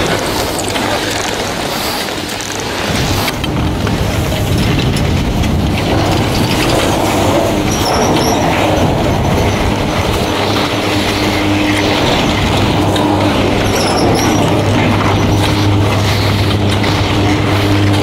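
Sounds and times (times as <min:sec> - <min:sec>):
chairlift chairs rumbling and clattering: 0:00.0 - 0:18.0.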